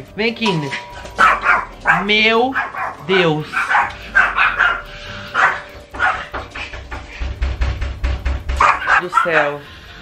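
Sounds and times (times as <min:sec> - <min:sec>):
dog barking: 0:00.8 - 0:06.7, 0:08.6 - 0:09.6.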